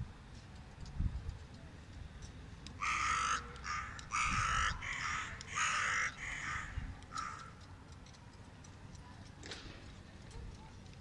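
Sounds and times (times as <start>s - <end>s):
crow cawing: 2.8s - 7.6s.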